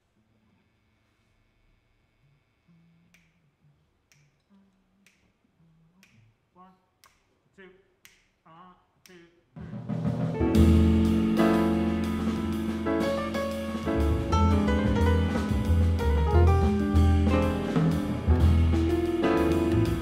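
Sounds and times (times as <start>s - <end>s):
finger snaps: 3.1s - 3.4s, 4.0s - 6.3s, 7.0s - 7.3s, 8.0s - 8.4s
jazz band playing: 9.6s - 20.0s
faint low notes: 10.4s - 20.0s.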